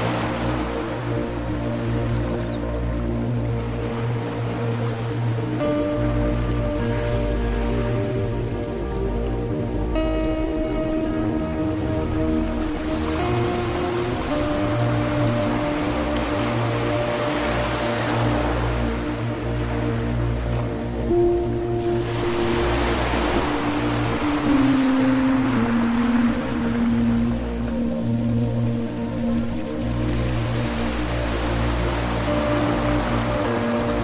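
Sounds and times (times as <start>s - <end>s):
ambient music sustained chords: 0.0s - 34.0s
sea surf: 0.0s - 34.0s.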